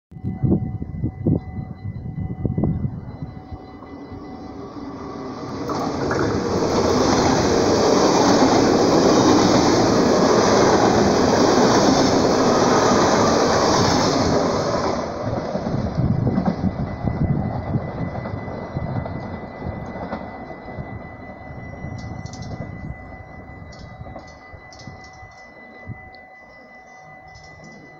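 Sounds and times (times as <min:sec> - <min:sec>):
train passing at speed: 0:01.1 - 0:27.9.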